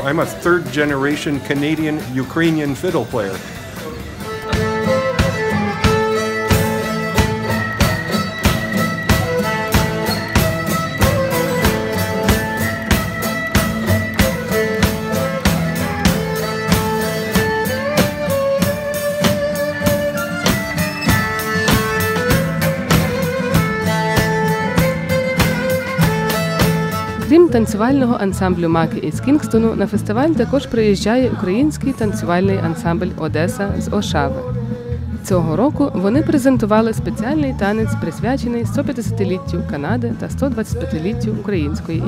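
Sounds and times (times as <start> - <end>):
strummed acoustic guitar: 0.0 - 30.7
fiddle melody: 0.9 - 30.3
quick steady drum beat: 4.4 - 28.1.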